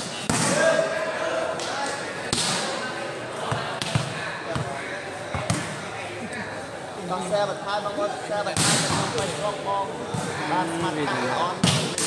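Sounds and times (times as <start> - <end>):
chatter of onlookers: 0.4 - 12.0
volleyball being hit: 8.5 - 9.3, 11.6 - 12.0.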